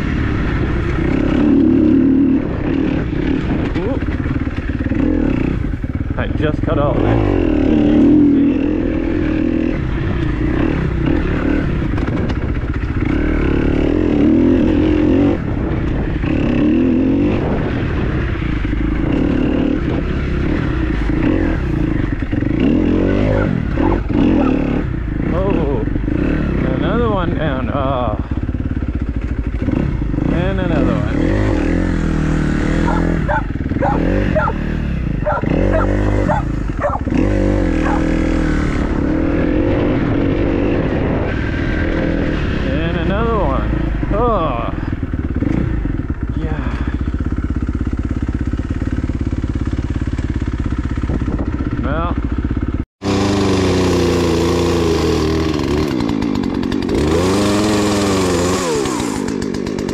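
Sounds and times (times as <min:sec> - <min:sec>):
dirt bike engine revving: 0:00.0 - 0:59.9.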